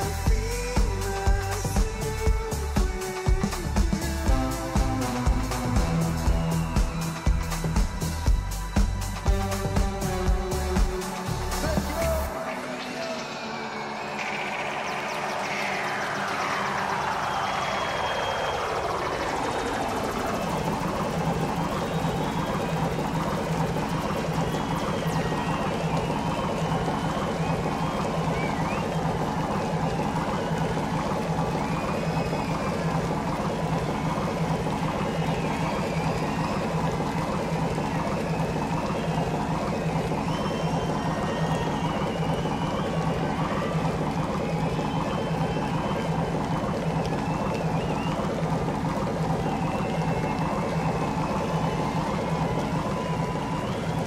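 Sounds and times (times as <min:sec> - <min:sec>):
falling synth sweep: 0:00.0 - 0:54.0
low synth drone: 0:00.0 - 0:54.0.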